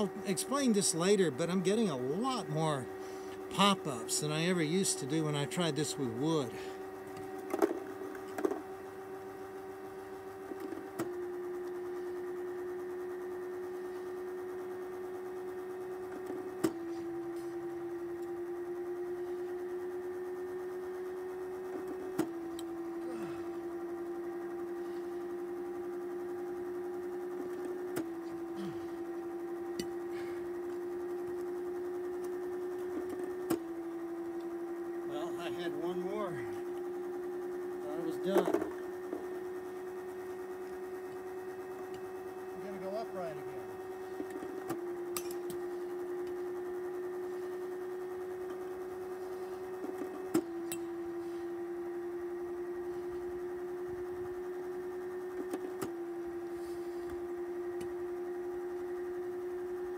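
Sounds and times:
pitching machine humming: 0.0 - 59.9.

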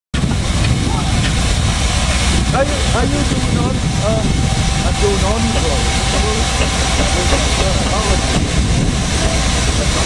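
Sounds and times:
steam engine low rumble: 0.2 - 10.0.

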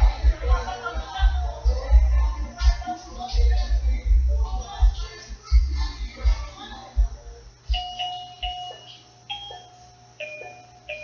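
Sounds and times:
bell-like melody: 7.7 - 11.0.

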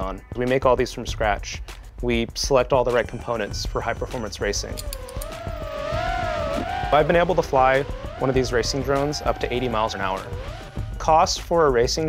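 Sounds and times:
quadcopter motors whining: 4.4 - 11.2.

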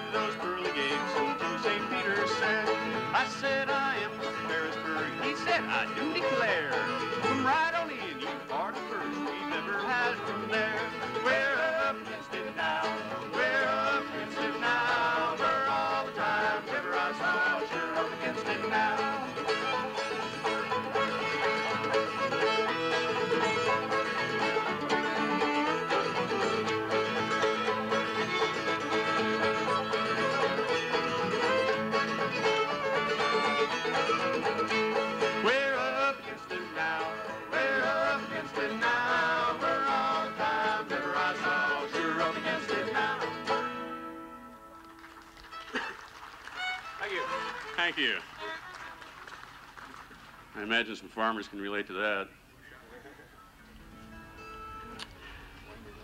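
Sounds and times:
banjo: 0.0 - 48.8
bluegrass string band playing: 0.0 - 56.0
fiddle: 0.0 - 56.0.

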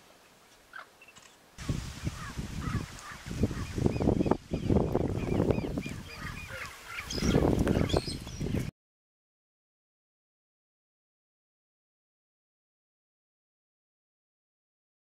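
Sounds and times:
birds calling: 0.5 - 8.7.

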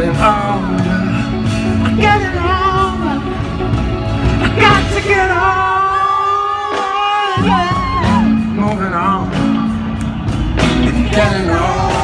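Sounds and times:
band playing slow rock: 0.0 - 12.0.

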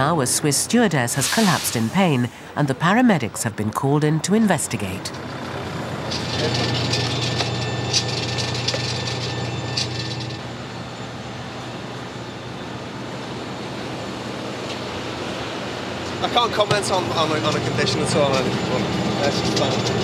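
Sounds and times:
outdoor hum: 0.0 - 20.0
van engine droning: 4.6 - 20.0.

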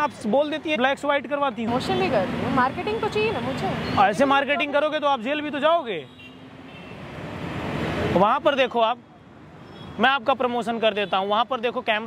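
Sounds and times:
person speaking: 4.0 - 5.6.

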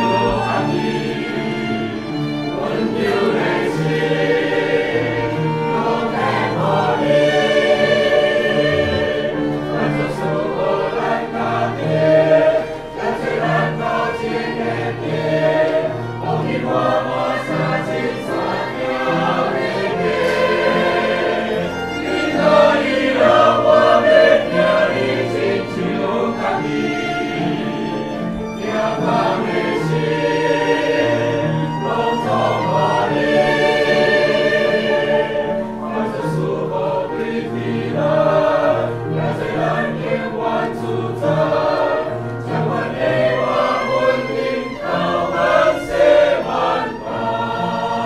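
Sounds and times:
choir singing a hymn: 0.0 - 48.0
instrumental accompaniment: 0.0 - 48.0.

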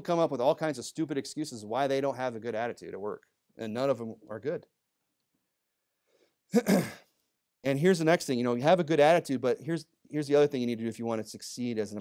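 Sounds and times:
man clearing his throat: 6.5 - 7.1.

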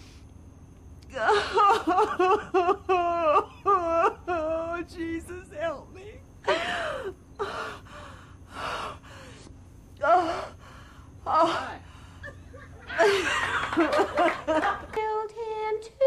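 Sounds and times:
woman wailing and sobbing: 1.1 - 5.2.

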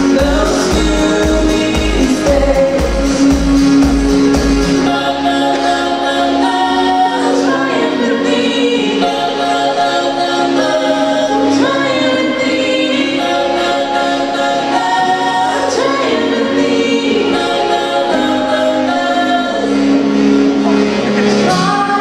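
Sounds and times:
pop backing track: 0.0 - 22.0
woman singing karaoke: 0.0 - 22.0.

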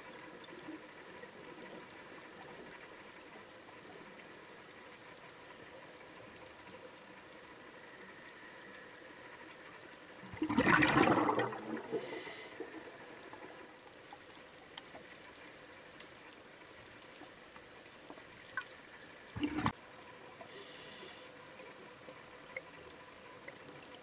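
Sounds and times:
faint steady hum: 0.0 - 24.0
gurgling exhaled bubbles: 10.3 - 13.6, 19.3 - 19.8
regulator hiss: 11.9 - 12.7, 20.5 - 21.4.

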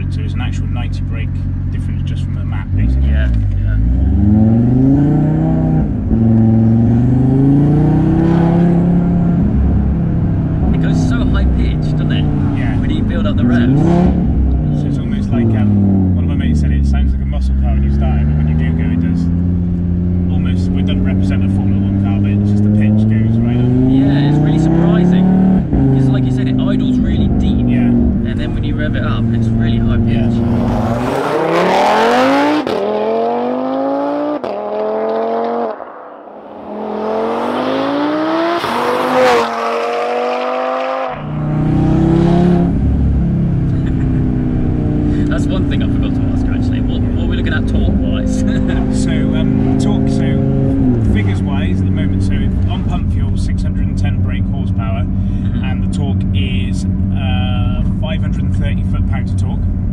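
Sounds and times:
car engine accelerating hard: 0.0 - 59.9.

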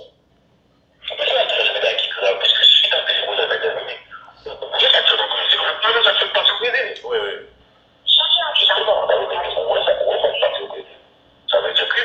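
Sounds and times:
voices through small speaker: 0.0 - 0.2, 0.9 - 12.0.

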